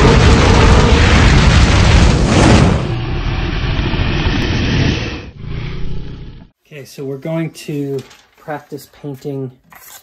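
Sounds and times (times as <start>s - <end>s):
loud deep rumble: 0.0s - 6.5s.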